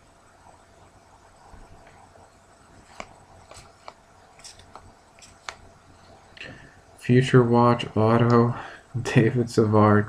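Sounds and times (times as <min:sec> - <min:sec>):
trading cards clicking and flicking: 0:02.8 - 0:05.7.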